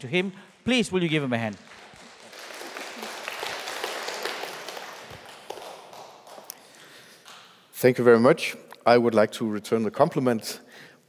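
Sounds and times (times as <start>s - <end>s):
congregation applauding: 1.2s - 7.7s.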